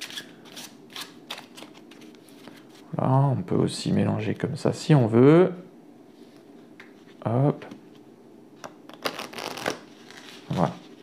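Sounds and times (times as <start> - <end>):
playing cards being shuffled: 8.6 - 11.0.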